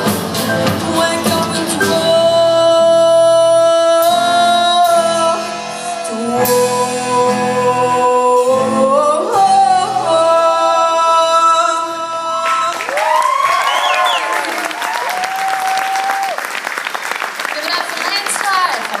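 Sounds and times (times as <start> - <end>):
audience applause: 12.6 - 19.0
audience whooping and cheering: 12.7 - 19.0.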